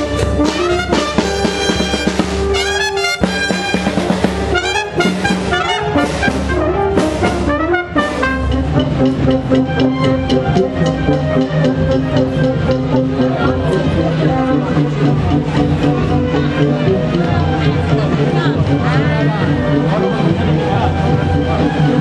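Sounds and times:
brass band playing: 0.0s - 22.0s.

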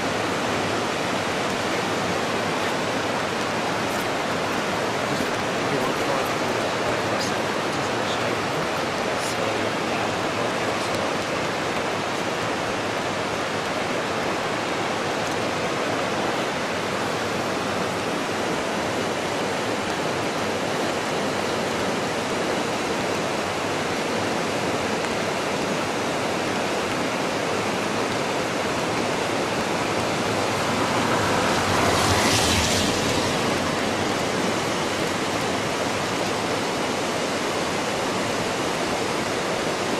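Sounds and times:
river water rushing: 0.0s - 39.9s.

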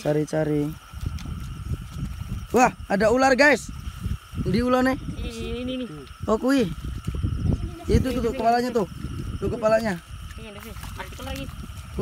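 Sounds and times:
people talking: 4.5s - 6.8s, 7.4s - 12.0s.

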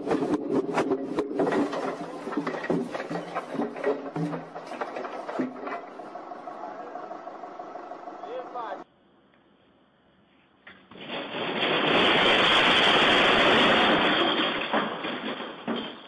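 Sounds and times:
logs knocking and clattering: 0.0s - 6.4s, 13.7s - 16.0s
people's voices: 6.5s - 8.8s.

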